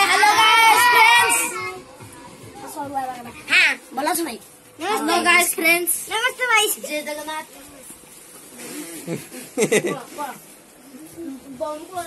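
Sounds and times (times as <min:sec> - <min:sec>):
children cheering loudly: 0:00.0 - 0:01.7
scattered children's voices: 0:00.0 - 0:08.7, 0:09.6 - 0:12.0.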